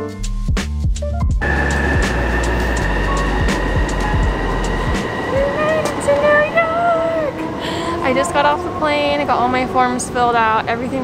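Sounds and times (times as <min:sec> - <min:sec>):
deep rumble: 0:00.3 - 0:10.5
traffic noise: 0:01.4 - 0:11.0
person making gliding vocal tones: 0:05.3 - 0:08.2.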